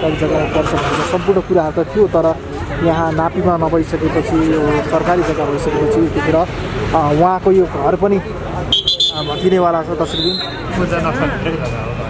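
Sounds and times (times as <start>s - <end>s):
people talking: 0.0s - 12.0s
street noise: 0.0s - 12.0s.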